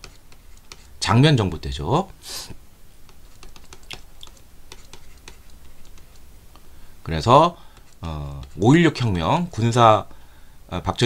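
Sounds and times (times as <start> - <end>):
stylus tapping on tablet screen: 0.0 - 0.9, 3.0 - 6.3
faint low hum: 0.0 - 11.0.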